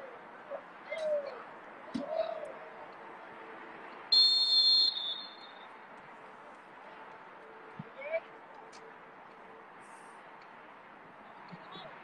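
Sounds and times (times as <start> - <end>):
referee's whistle blast: 4.1 - 5.6.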